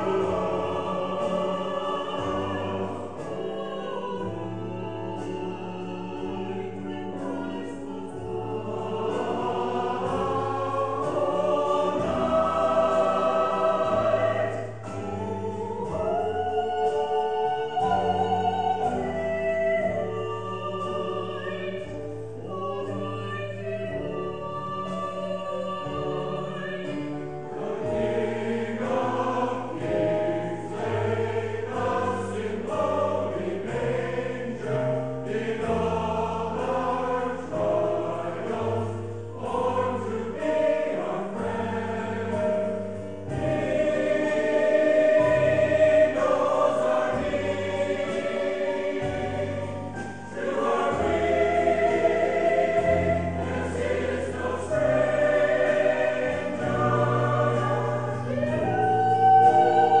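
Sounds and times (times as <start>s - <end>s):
choir singing in parts: 0.0s - 60.0s.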